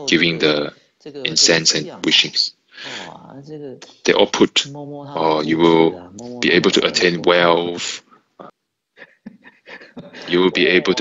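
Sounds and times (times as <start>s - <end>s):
man chuckling softly: 8.4s - 11.0s.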